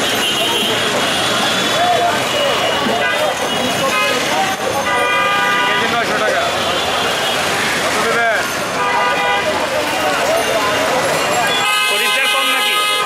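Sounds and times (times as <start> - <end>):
vehicle horns honking: 0.0 - 7.8, 8.7 - 9.8, 10.7 - 13.0
many voices talking: 0.0 - 13.0.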